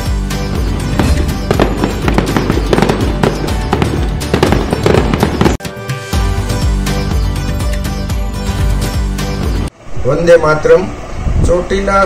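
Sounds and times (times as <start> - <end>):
background music: 0.0 - 9.7
fireworks crackling: 1.0 - 5.6.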